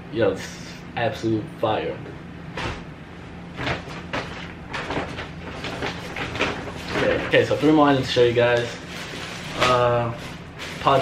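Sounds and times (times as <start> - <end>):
steady low hum: 0.0 - 11.0
plastic bags and clothing rustling: 3.6 - 11.0.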